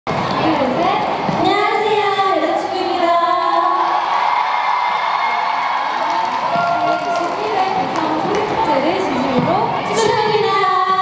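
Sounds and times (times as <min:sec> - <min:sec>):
crowd cheering and shouting: 0:00.1 - 0:11.0.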